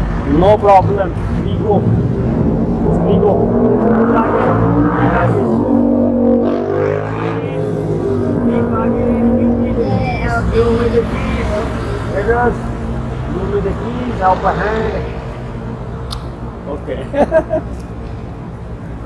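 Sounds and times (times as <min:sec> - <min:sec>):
street traffic: 0:00.0 - 0:19.0
people talking: 0:00.3 - 0:01.9, 0:03.0 - 0:05.7, 0:08.4 - 0:12.6, 0:16.7 - 0:17.3
car engine running: 0:00.3 - 0:15.0.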